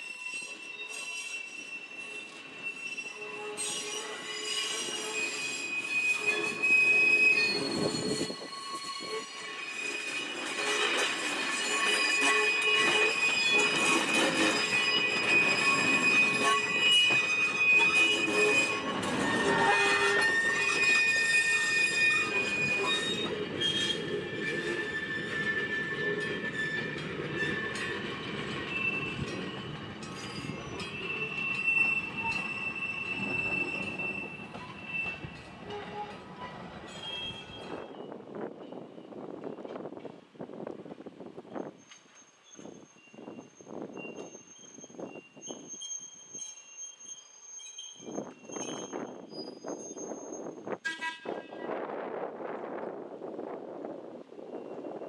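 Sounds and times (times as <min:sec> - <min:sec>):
rumble of wheels on rail: 0:00.0 - 0:55.0
train wheels squealing on track: 0:00.0 - 0:55.0.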